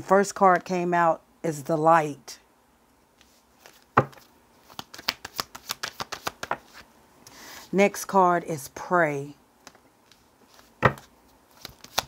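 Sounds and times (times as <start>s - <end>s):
cards clicking while shuffled: 3.6s - 6.8s, 10.9s - 12.0s.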